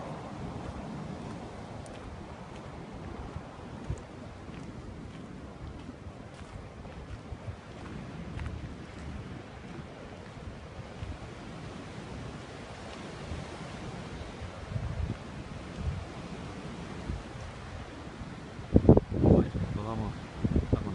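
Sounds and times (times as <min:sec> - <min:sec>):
wind buffeting microphone: 0:00.0 - 0:20.9.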